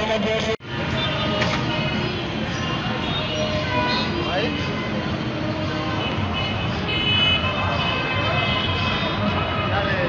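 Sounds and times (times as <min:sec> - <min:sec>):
busy street traffic: 0:00.0 - 0:10.0
crowd voices: 0:00.0 - 0:10.0
vehicle horn: 0:03.0 - 0:05.1, 0:06.0 - 0:09.9.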